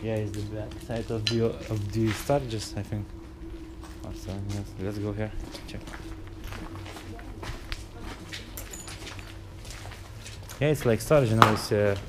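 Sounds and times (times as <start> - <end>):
footsteps crunching over debris: 0.0 - 12.0
low steady hum: 0.0 - 12.0.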